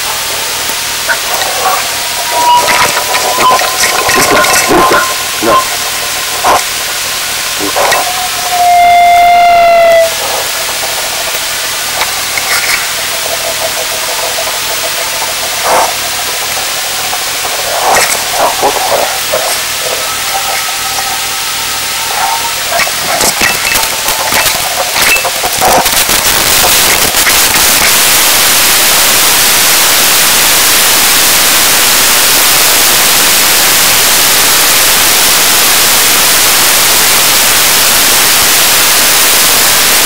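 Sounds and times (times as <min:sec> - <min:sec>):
radio link hiss and crackle: 0:00.0 - 0:40.0
loud falling tone: 0:01.1 - 0:12.3.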